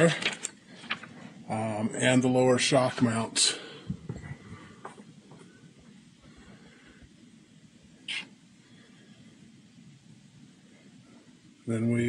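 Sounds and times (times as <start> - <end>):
short sharp hiss: 8.0 - 8.4.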